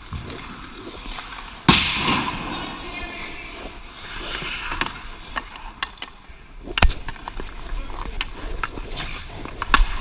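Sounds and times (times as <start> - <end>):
skate blades scraping ice: 2.3 - 10.0.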